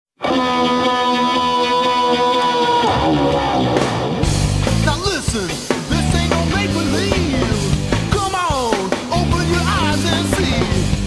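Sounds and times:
rock music: 0.2 - 11.0.

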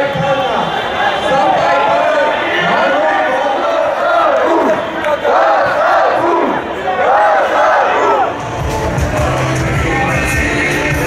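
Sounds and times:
crowd chanting a slogan: 0.0 - 11.0.

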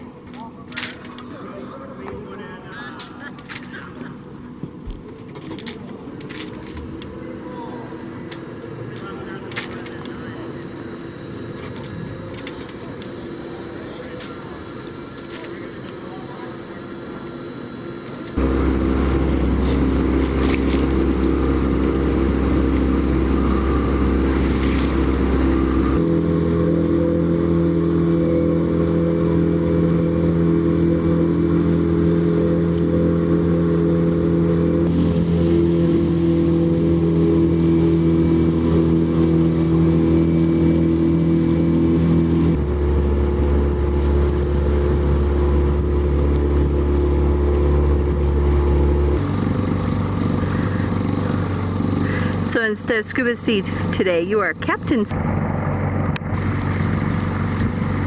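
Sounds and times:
boat motor droning: 0.0 - 58.0.

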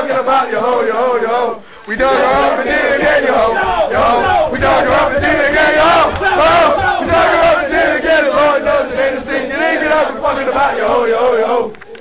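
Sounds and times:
men chanting a drinking song: 0.0 - 11.8.

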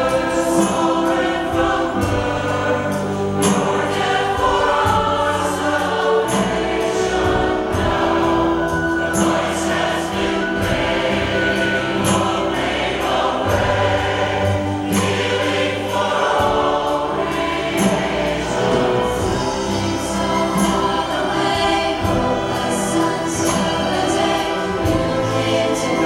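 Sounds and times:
choir singing with orchestra: 0.0 - 26.0.

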